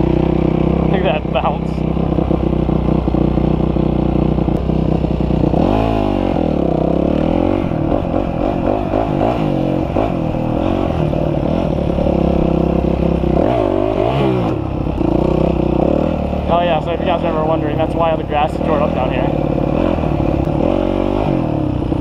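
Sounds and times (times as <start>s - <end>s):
dirt bike engine revving: 0.0s - 22.0s.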